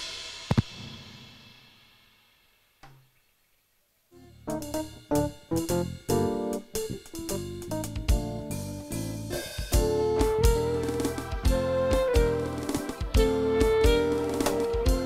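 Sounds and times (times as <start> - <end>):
live band playing: 4.4 - 15.0.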